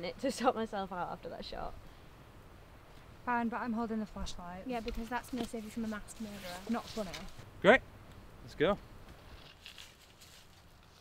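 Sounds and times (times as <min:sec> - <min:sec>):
soft rustles: 0:04.7 - 0:07.4, 0:09.1 - 0:11.0.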